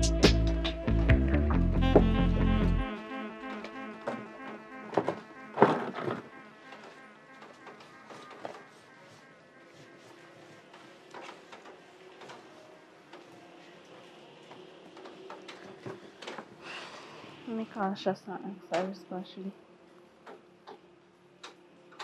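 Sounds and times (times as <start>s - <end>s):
faint steady buzz: 2.8s - 22.0s
plastic chair knocking and scraping: 4.9s - 6.3s.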